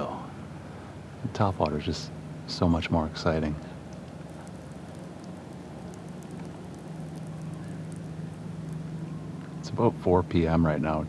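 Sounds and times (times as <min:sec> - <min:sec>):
low motor hum: 0:00.0 - 0:11.0
faint ticks and patter: 0:03.4 - 0:09.8.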